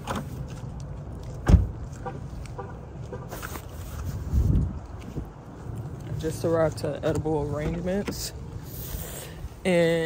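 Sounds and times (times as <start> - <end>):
car door slamming: 1.4 - 1.8.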